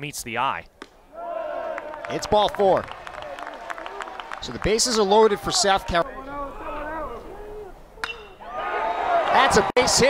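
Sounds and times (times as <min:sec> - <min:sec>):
metal bat striking ball: 0:08.0 - 0:08.4.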